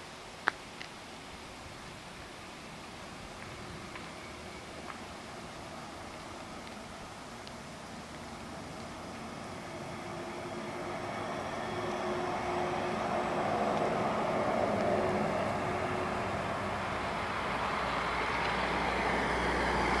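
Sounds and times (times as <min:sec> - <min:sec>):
electric bus driving past: 0:02.4 - 0:20.0.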